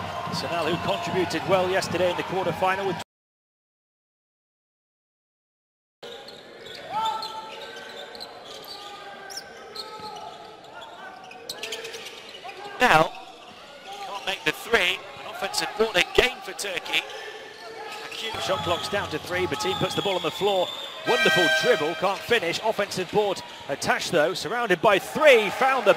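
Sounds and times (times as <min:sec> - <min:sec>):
indoor arena ambience: 0:00.0 - 0:03.0, 0:06.0 - 0:25.9
loud sharp sound: 0:21.1 - 0:22.4.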